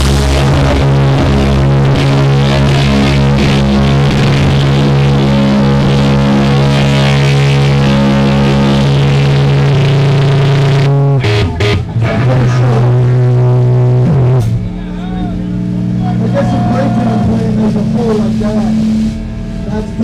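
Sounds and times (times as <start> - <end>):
punk band playing: 0.0 - 20.0.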